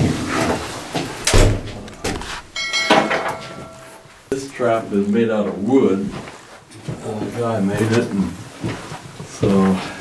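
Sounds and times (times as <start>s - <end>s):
short metallic clank: 2.6s - 4.0s.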